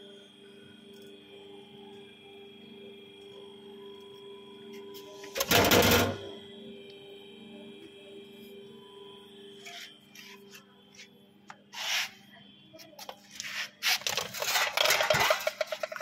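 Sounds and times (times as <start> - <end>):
machine humming and whining: 0.0 - 16.0.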